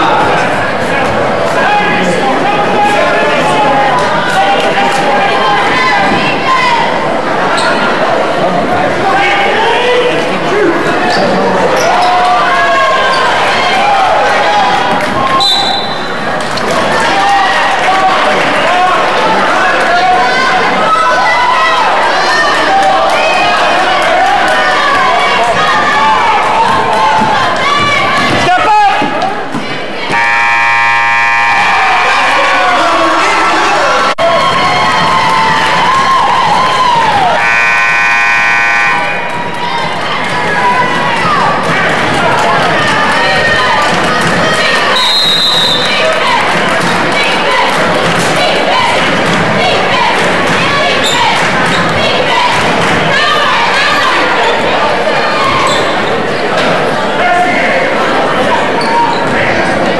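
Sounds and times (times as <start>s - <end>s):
spectators' voices: 0.0s - 59.9s
scoreboard horn blasts: 30.1s - 32.8s, 37.4s - 39.4s.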